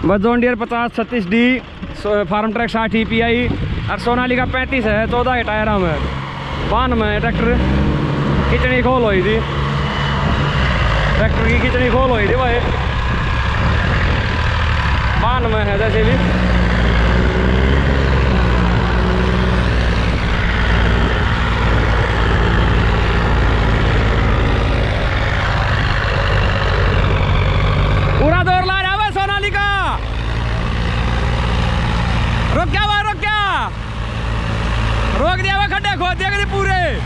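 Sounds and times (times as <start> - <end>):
diesel tractor engines under load: 0.0 - 37.0
man shouting loudly: 28.2 - 30.0, 32.6 - 33.7, 35.2 - 37.0.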